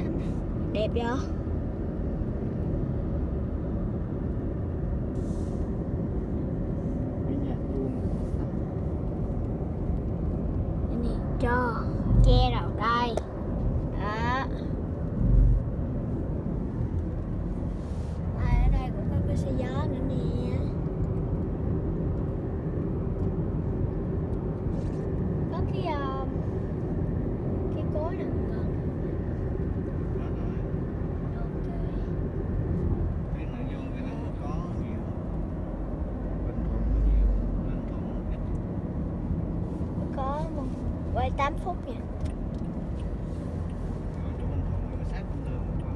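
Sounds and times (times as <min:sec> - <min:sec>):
car road and engine rumble: 0:00.0 - 0:45.9.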